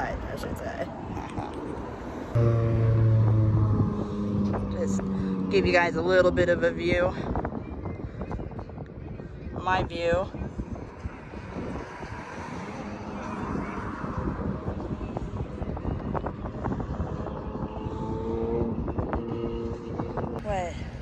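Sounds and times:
cars passing on a bridge: 0:00.0 - 0:21.0.

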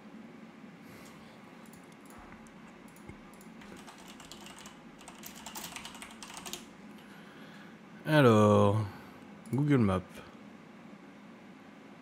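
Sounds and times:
keyboard typing clicks: 0:01.6 - 0:06.7.

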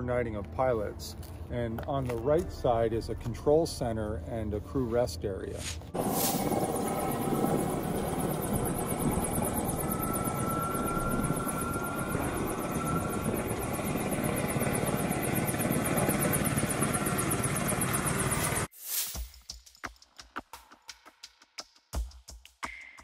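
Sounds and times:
aircraft rotors hovering: 0:06.0 - 0:18.7.

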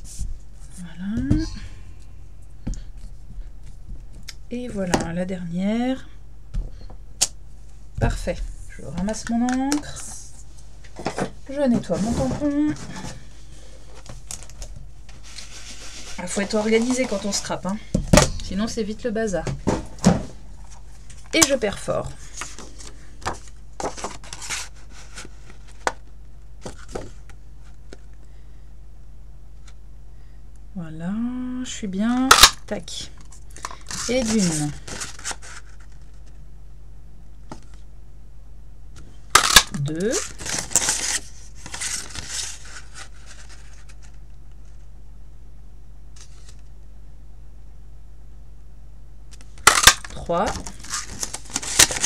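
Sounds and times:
card stock rustling and sliding: 0:15.1 - 0:17.6, 0:22.2 - 0:25.8, 0:33.6 - 0:36.3, 0:40.2 - 0:44.1.

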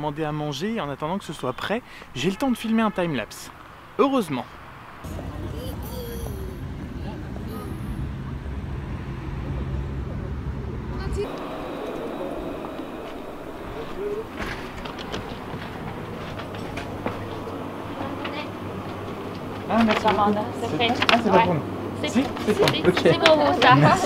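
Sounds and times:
murmured voices: 0:05.0 - 0:08.6
low outdoor rumble: 0:05.0 - 0:19.5.

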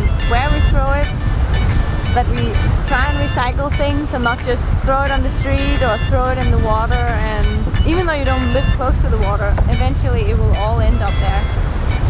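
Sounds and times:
woman speaking: 0:00.0 - 0:01.1, 0:02.1 - 0:11.5
background music: 0:00.0 - 0:12.0
wind rumble on microphone: 0:00.0 - 0:12.0.

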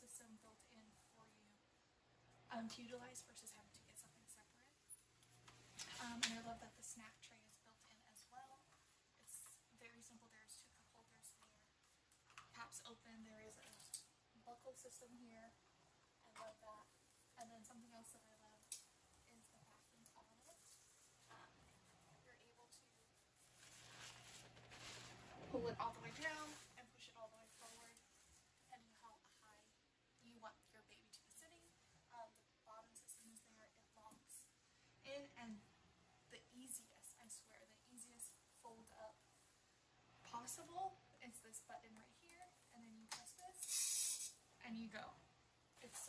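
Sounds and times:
fabric and strap rustling: 0:22.8 - 0:28.7.

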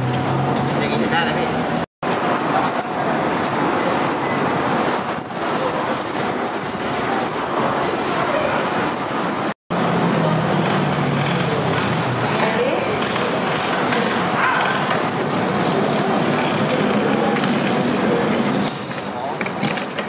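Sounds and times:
dense outdoor noise: 0:00.0 - 0:20.0.

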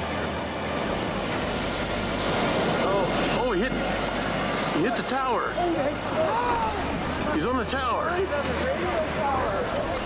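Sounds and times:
rushing outdoor background noise: 0:00.0 - 0:10.0.

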